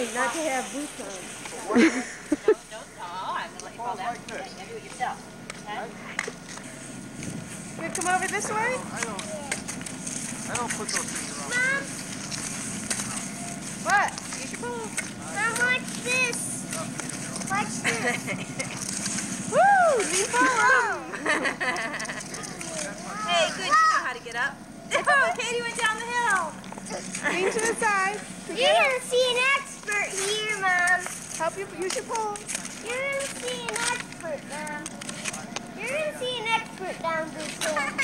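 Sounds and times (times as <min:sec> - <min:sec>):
high-pitched voices chattering: 0:07.8 - 0:38.0.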